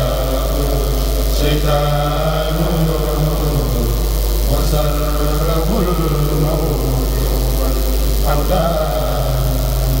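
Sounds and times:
men chanting in unison: 0:00.0 - 0:10.0
steady low hum: 0:00.0 - 0:10.0.

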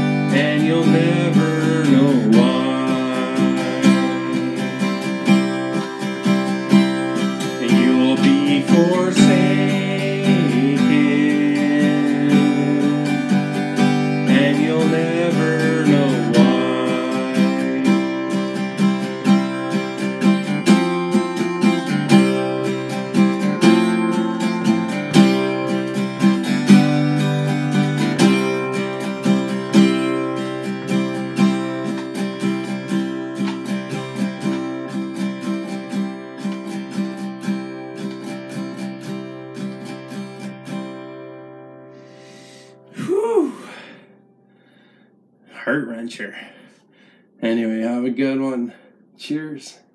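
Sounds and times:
acoustic guitar strumming chords: 0:00.0 - 0:45.0.

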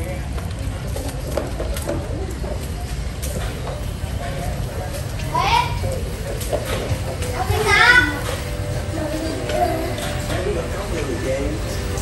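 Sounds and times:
children's voices: 0:05.2 - 0:06.0, 0:07.0 - 0:10.7.

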